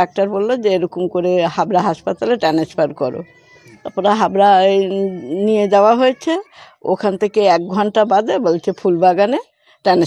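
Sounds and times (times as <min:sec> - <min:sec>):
woman speaking: 0:00.0 - 0:10.0.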